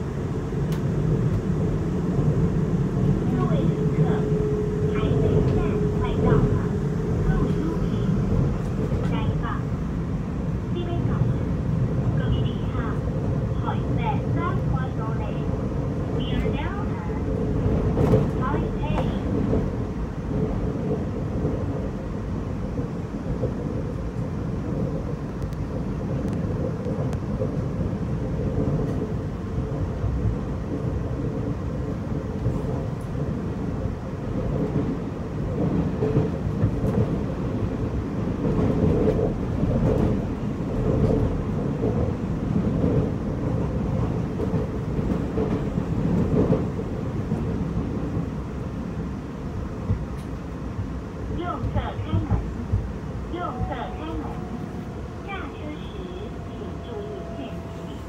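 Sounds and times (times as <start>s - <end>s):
train running low rumble: 0.0s - 58.0s.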